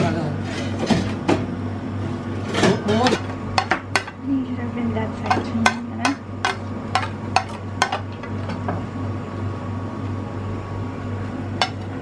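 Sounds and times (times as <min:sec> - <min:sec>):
low kitchen hum: 0:00.0 - 0:12.0.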